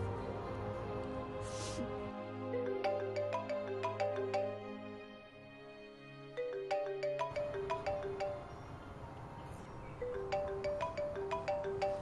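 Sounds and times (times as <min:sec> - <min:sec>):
soft background music: 0:00.0 - 0:12.0
smartphone ringtone melody: 0:02.6 - 0:05.0, 0:06.4 - 0:08.8, 0:10.0 - 0:12.0.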